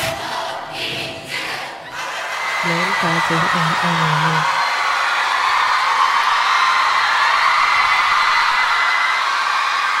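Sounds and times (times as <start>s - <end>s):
crowd cheering and screaming: 1.9s - 10.0s.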